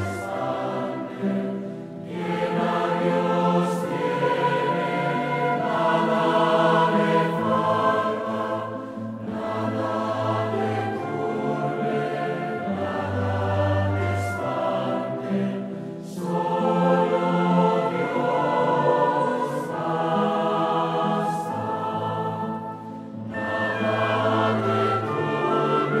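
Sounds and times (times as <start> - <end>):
choir singing a hymn: 0.0 - 26.0.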